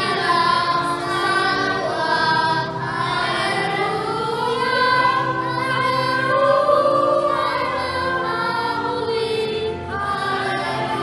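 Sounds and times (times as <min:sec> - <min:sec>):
children's choir singing a hymn: 0:00.0 - 0:11.0.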